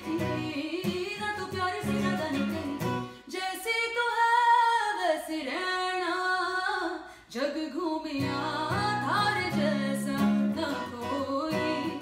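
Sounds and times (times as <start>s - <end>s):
acoustic guitar strumming: 0.0s - 3.3s, 8.2s - 12.0s
woman singing: 0.0s - 12.0s.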